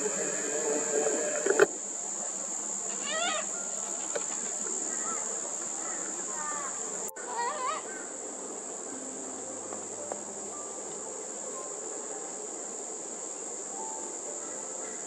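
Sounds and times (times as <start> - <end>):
high-pitched insect drone: 0.0 - 15.0
warbling bird call: 2.9 - 8.2.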